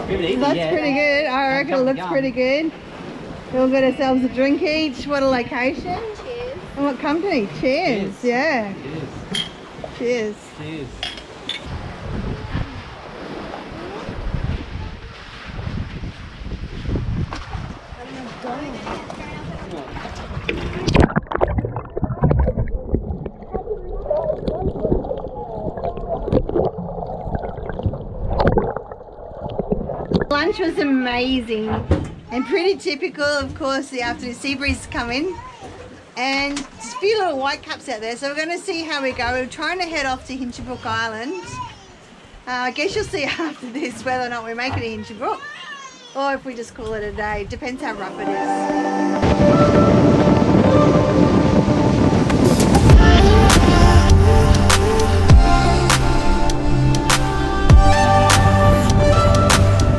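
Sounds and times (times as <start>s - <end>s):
wind on microphone: 11.5s - 18.2s, 18.8s - 30.7s, 48.7s - 59.9s
muffled underwater sloshing and gurgling: 18.7s - 30.7s
background music: 47.8s - 59.9s.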